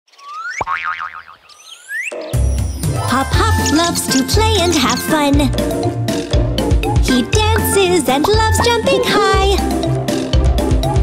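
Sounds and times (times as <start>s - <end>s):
wobbling boing tone: 0.6s - 1.4s.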